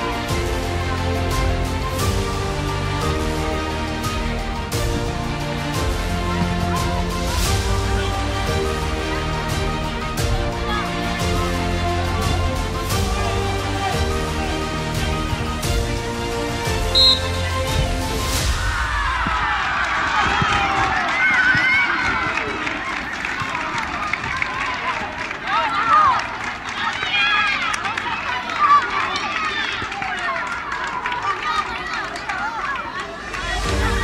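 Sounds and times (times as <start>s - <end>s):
music: 0.0s - 19.4s, 33.2s - 34.0s.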